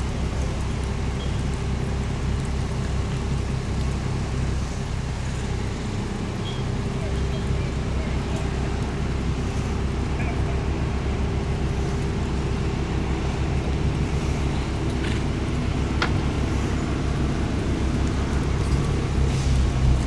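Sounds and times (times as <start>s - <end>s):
low outdoor rumble: 0.0s - 20.0s
faint voices: 6.4s - 11.5s.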